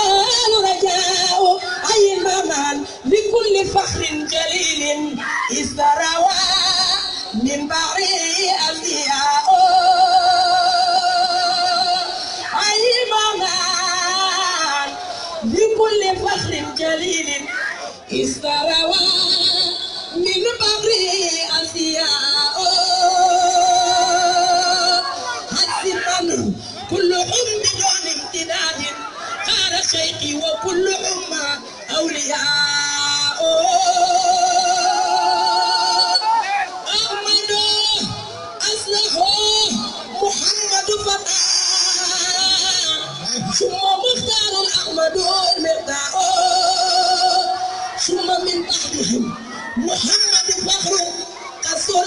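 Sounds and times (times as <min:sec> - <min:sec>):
woman singing: 0:00.0 - 0:36.2, 0:36.8 - 0:52.0.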